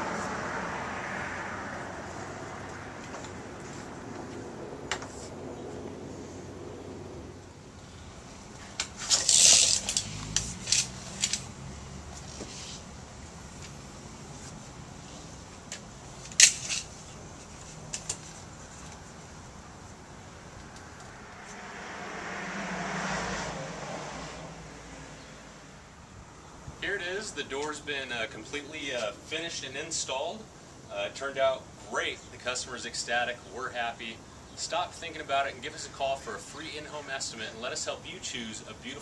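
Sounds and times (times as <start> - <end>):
tools clinking and clattering: 8.7 - 11.5.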